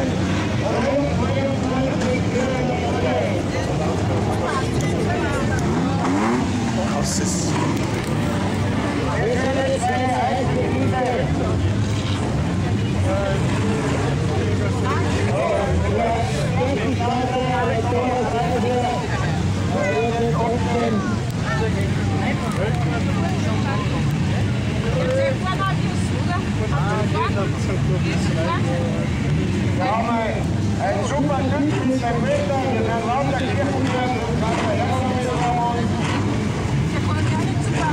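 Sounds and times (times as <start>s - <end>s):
car engines idling and revving: 0.0s - 37.9s
people talking: 0.0s - 37.9s.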